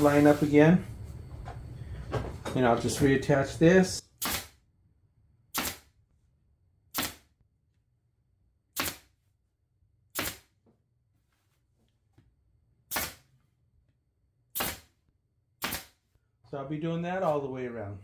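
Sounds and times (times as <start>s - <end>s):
pneumatic staple gun shots: 4.2s - 4.6s, 5.5s - 5.9s, 6.9s - 7.2s, 8.8s - 9.1s, 10.1s - 10.5s, 12.9s - 13.2s, 14.5s - 14.9s, 15.6s - 16.0s.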